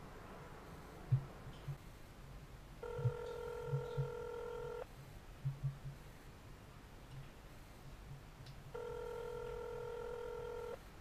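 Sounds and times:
soft low thumps: 1.1 - 1.8, 5.4 - 6.0
phone ring-back beep: 2.8 - 4.8, 8.8 - 10.8.

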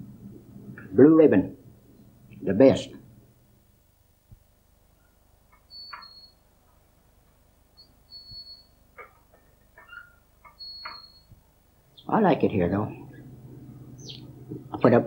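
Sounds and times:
faint bird chirps: 5.0 - 6.5, 7.7 - 8.8, 9.8 - 12.2, 13.9 - 14.4.

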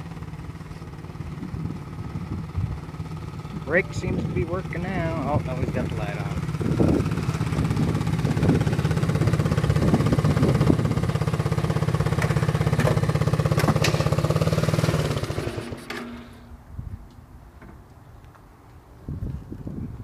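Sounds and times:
go-kart engine running: 0.0 - 16.5.

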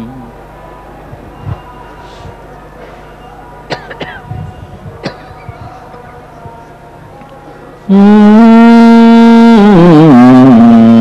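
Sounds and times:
sound system hum: 0.0 - 11.0.

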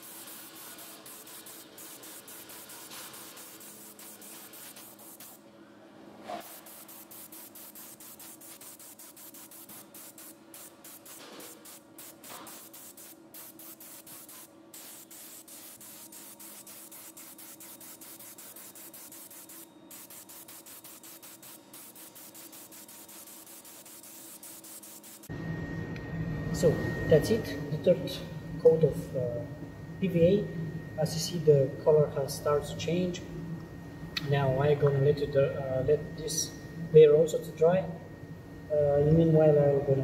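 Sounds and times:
spray gun hissing: 0.0 - 5.4, 6.4 - 25.3.

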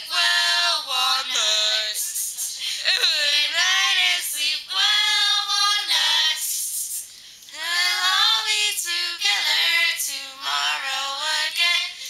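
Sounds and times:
girls singing unaccompanied: 0.0 - 2.2, 2.9 - 6.7, 7.5 - 12.0.

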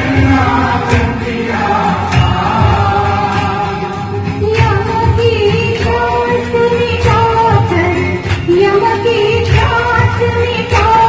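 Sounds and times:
sharp struck beat: 0.0 - 6.2
hymn singing with accompaniment: 0.0 - 11.0.

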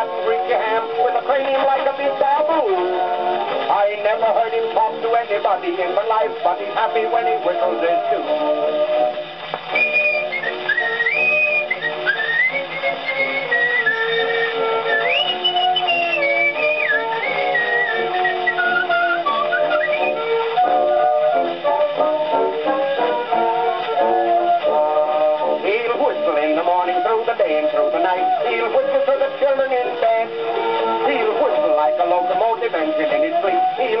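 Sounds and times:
instrumental accompaniment on gramophone: 0.0 - 34.0
man whistling a melody: 8.5 - 26.3.

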